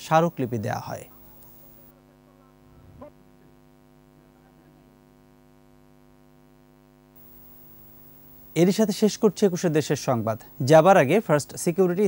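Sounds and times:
faint mains hum: 0:00.0 - 0:12.0.

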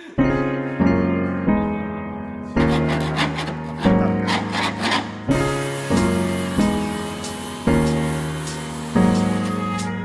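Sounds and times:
background music: 0:00.0 - 0:10.0
blade scraping rust: 0:02.6 - 0:08.0.

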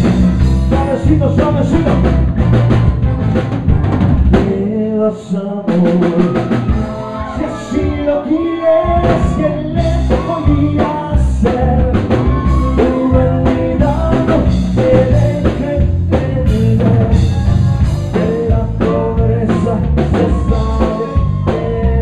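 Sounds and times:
accordion melody: 0:00.0 - 0:04.2
congas: 0:00.0 - 0:04.7, 0:05.7 - 0:22.0
drum kit: 0:00.0 - 0:04.9, 0:05.6 - 0:22.0
electric bass: 0:00.0 - 0:22.0.

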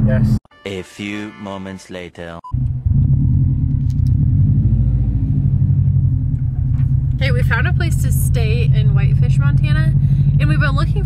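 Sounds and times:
car engine and road noise: 0:00.0 - 0:00.4, 0:02.5 - 0:11.0.

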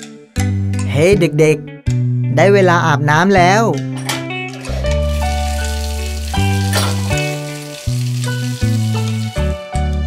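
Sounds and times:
instrumental music: 0:03.6 - 0:10.0
shower water spraying: 0:05.1 - 0:09.6.

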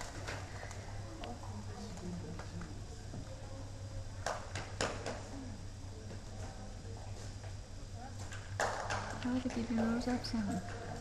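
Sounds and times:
faint distant voices: 0:00.0 - 0:11.0
steady low hum: 0:00.0 - 0:11.0.

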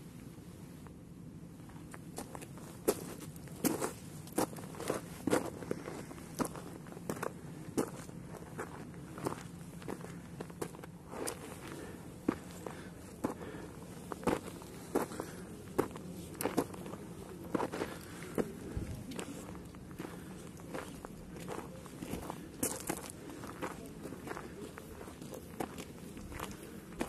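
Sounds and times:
footsteps on stony dirt: 0:01.6 - 0:27.0.

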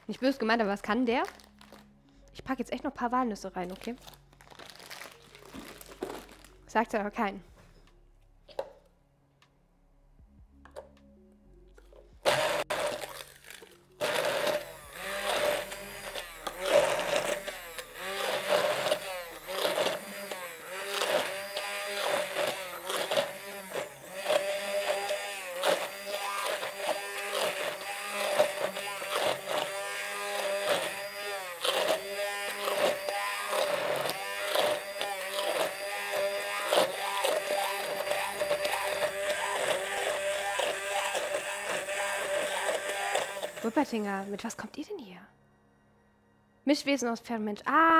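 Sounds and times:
stick blender motor running: 0:12.2 - 0:44.7.

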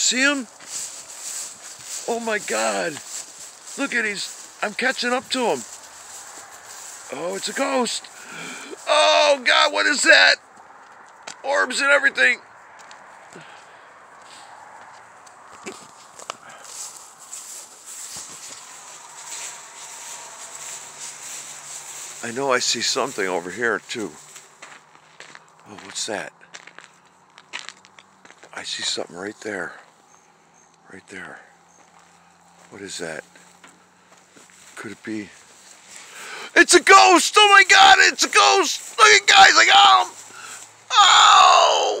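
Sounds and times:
man screaming: 0:07.1 - 0:10.4, 0:36.4 - 0:42.0.

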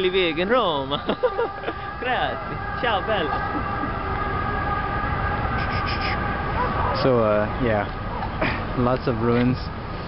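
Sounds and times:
low traffic rumble: 0:00.0 - 0:10.0.

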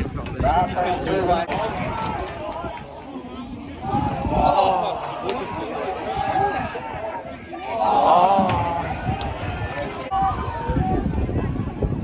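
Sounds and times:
football crowd shouting: 0:00.2 - 0:12.0.

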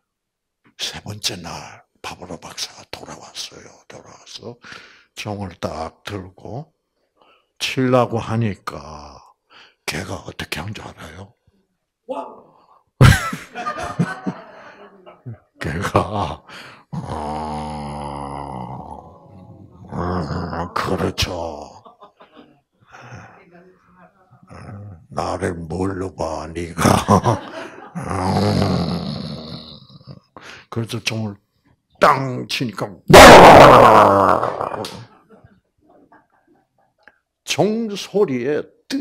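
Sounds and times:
man groaning into a microphone: 0:15.9 - 0:21.8, 0:24.5 - 0:25.2, 0:28.0 - 0:30.2, 0:33.1 - 0:35.1.

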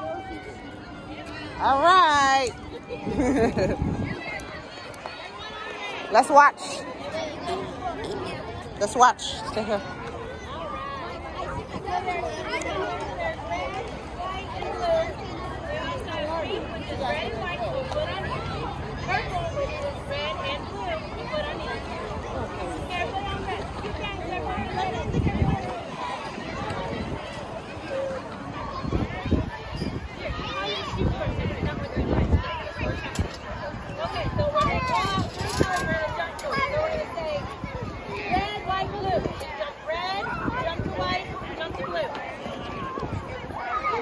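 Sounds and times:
children chattering: 0:00.0 - 0:44.0.

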